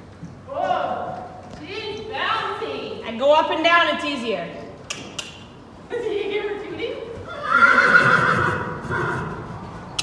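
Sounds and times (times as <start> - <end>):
horse whinnying: 7.2 - 9.9.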